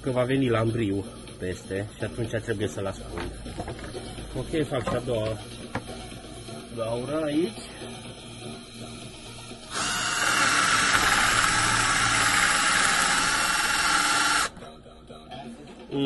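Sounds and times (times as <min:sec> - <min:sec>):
cordless drill boring into wood: 0:09.7 - 0:14.5.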